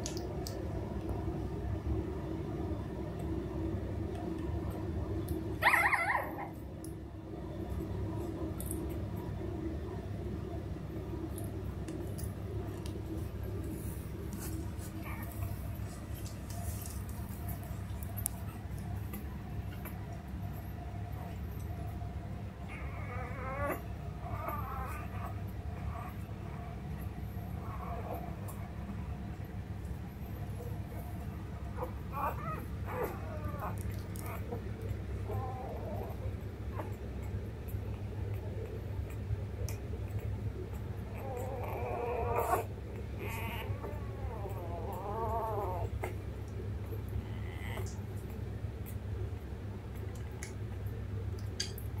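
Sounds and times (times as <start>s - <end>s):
steady low hum: 0.0s - 52.0s
puppy whimpering: 5.6s - 6.6s, 14.8s - 15.6s, 22.6s - 26.9s, 31.7s - 39.2s, 40.0s - 46.2s, 47.0s - 48.4s.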